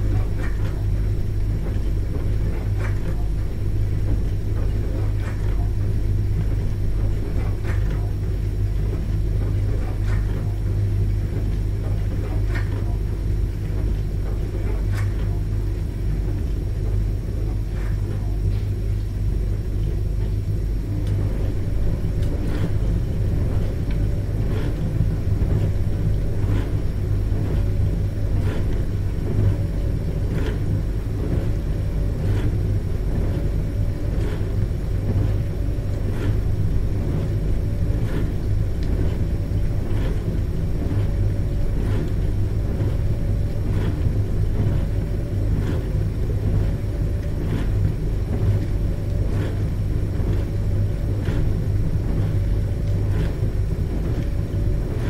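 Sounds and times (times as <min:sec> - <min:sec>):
dishwasher pump hum: 0:00.0 - 0:55.0.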